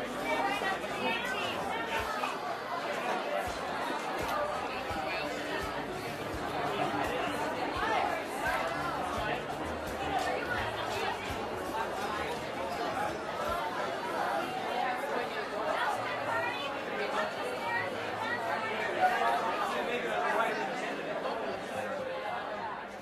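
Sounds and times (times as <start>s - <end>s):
restaurant chatter: 0.0s - 23.0s.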